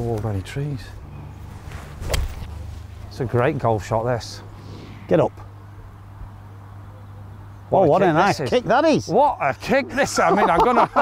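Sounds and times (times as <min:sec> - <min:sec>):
golf club striking ball: 0:02.0 - 0:02.6.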